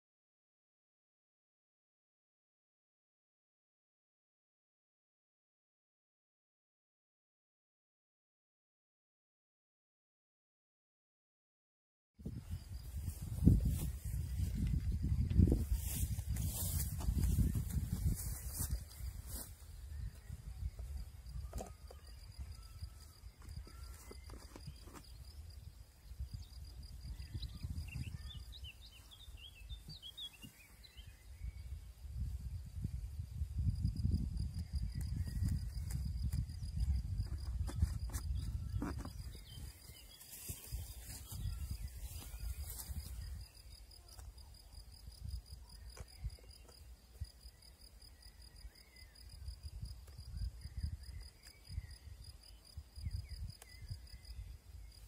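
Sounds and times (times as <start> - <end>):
wind rumbling on microphone: 12.2 - 55.0
songbird chirping: 12.3 - 32.9, 33.6 - 55.0.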